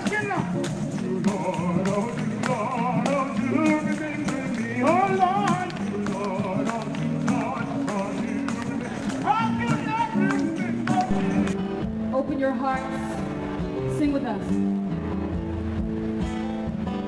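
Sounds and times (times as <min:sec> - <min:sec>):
person singing gospel: 0:00.0 - 0:11.6
tambourine beat: 0:00.0 - 0:11.6.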